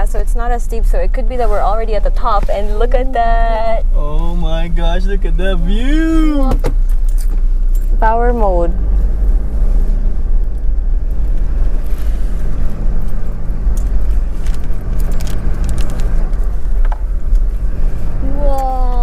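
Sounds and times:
car engine and road rumble: 0.0 - 19.0.

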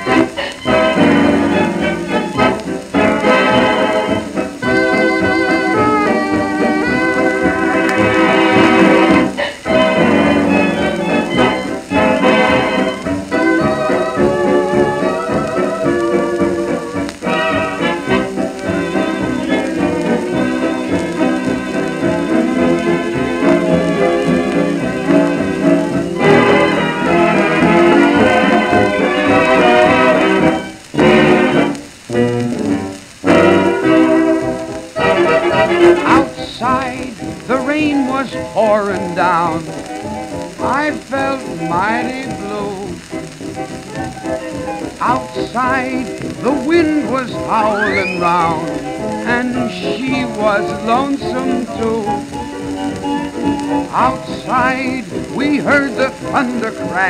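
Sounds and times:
dance orchestra on old record: 0.0 - 57.0.

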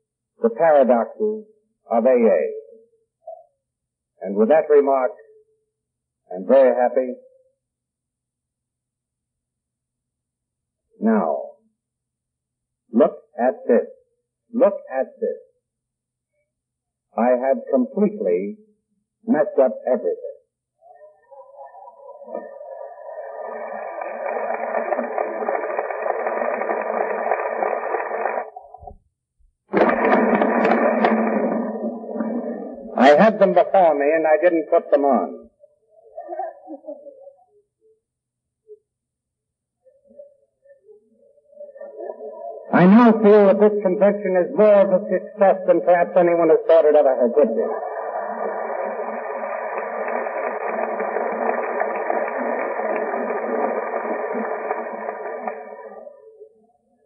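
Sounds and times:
audience applauding: 22.1 - 28.8, 29.7 - 32.5, 47.5 - 56.2.

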